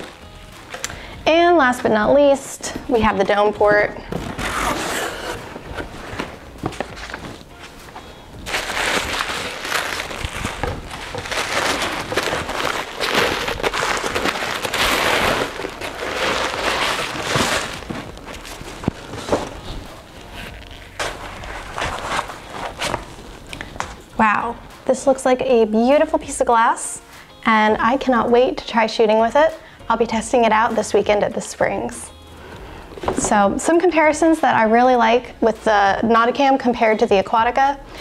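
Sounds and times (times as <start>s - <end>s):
plastic wrapping rustling: 0.0s - 1.1s, 4.0s - 24.1s
cardboard box opening: 4.2s - 7.5s, 8.4s - 24.0s.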